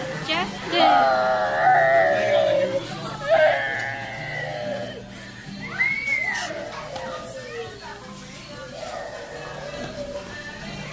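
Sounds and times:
background music: 0.0s - 10.9s
children's voices: 0.6s - 5.0s, 5.6s - 8.1s, 8.7s - 10.2s.

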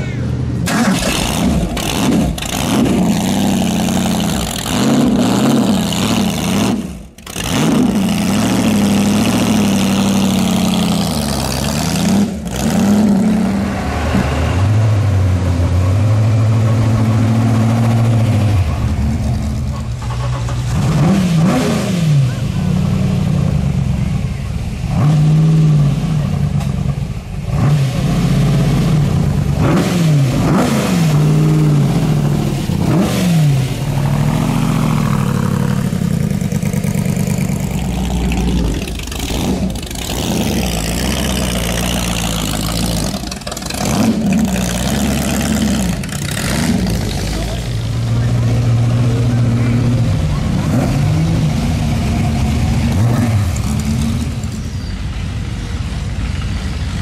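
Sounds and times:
race car engines blipping throttle: 0.0s - 57.0s.

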